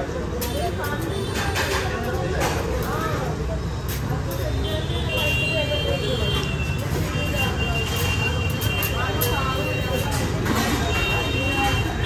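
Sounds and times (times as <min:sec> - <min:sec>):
people talking: 0:00.0 - 0:12.0
traffic rumble: 0:00.0 - 0:12.0.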